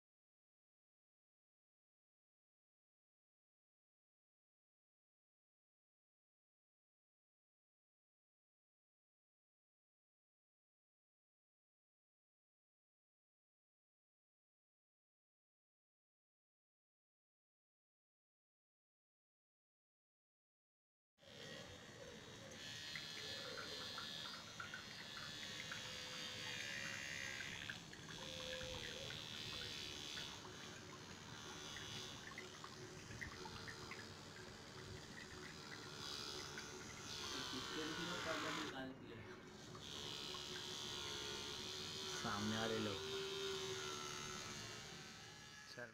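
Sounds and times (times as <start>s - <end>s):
small motor whirring: 21.2s - 45.9s
water splashing: 26.4s - 37.6s.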